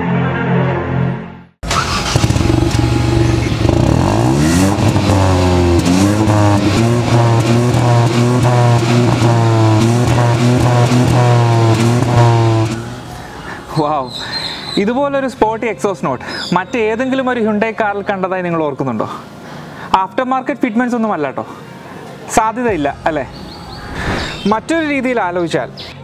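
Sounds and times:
car exhaust revving: 1.6s - 13.6s
car engine starting: 1.6s - 13.7s.

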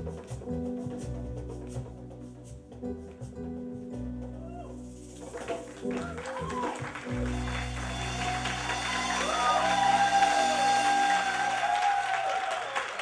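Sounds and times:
audience applause: 5.3s - 13.0s
latin band holding a chord: 7.2s - 11.8s.

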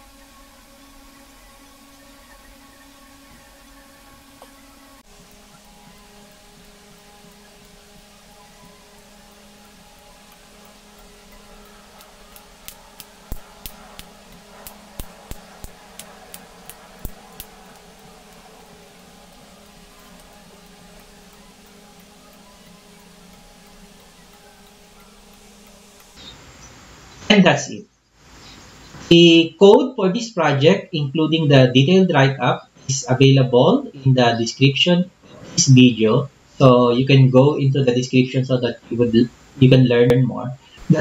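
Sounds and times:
low hum: 0.0s - 27.8s.

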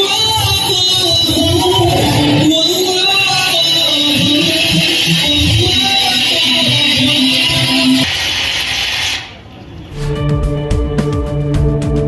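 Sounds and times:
dance music: 0.0s - 9.2s.

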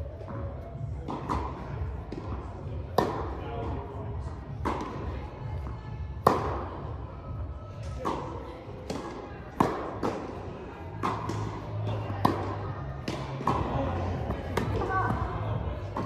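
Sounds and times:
tennis ball bounces: 1.0s - 3.4s, 4.5s - 6.8s, 7.8s - 15.2s.

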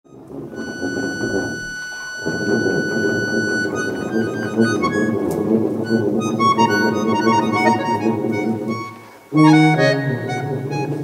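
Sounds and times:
accordion playing: 0.1s - 11.0s
tuba playing: 0.1s - 11.0s.

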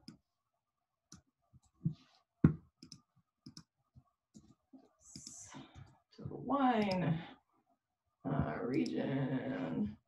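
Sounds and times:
mouse and keyboard clicks: 2.8s - 3.7s.

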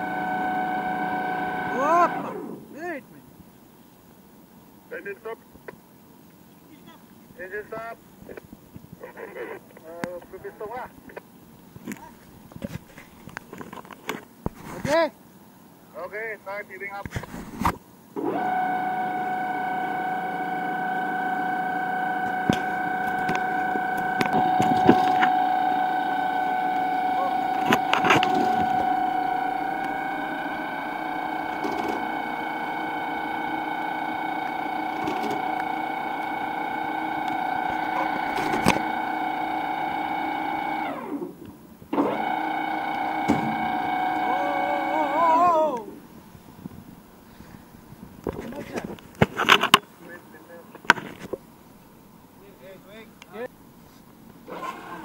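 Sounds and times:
winch machine whine: 0.0s - 3.0s, 18.2s - 46.2s.

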